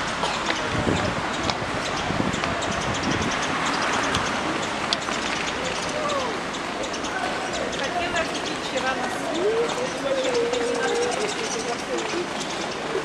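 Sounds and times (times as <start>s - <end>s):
indistinct voices: 0.0s - 13.0s
outdoor street noise: 0.0s - 13.0s.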